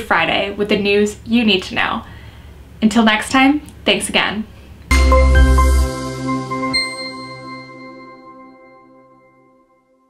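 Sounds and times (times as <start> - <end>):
bell-like chime jingle: 4.9 - 9.5.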